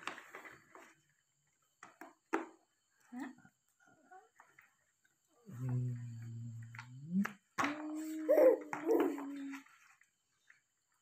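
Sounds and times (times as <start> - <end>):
faint soft voice sounds: 5.3 - 10.0.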